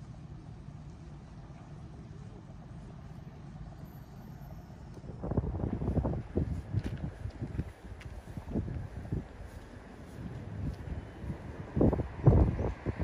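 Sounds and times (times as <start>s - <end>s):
low outdoor rumble: 0.0s - 13.0s
wind buffeting microphone: 5.0s - 13.0s.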